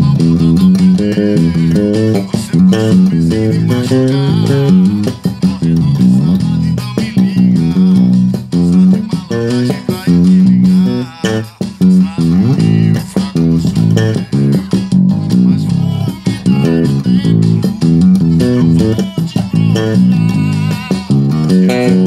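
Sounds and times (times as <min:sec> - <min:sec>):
electric bass plucked notes: 0:00.0 - 0:22.0.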